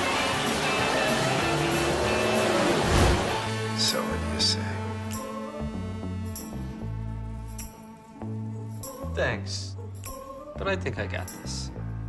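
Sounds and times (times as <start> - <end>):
car passing close: 0.0 - 3.8
race car engine: 0.0 - 5.1
music: 0.0 - 12.0.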